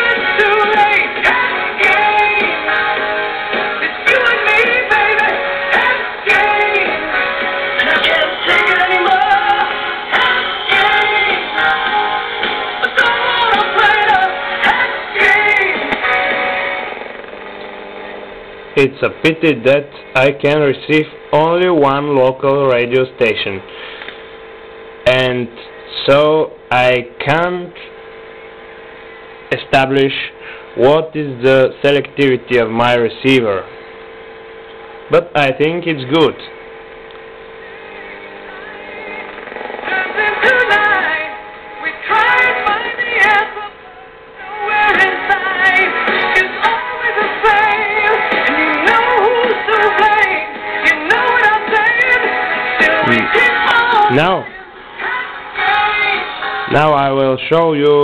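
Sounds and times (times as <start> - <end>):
music from crystal radio: 0.0 - 21.8, 23.8 - 25.0, 27.4 - 30.8, 33.6 - 35.1, 35.7 - 58.0.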